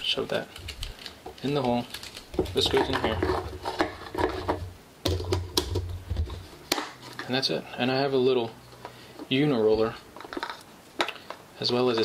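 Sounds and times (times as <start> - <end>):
plastic clicks and knocks: 0.8 - 7.3.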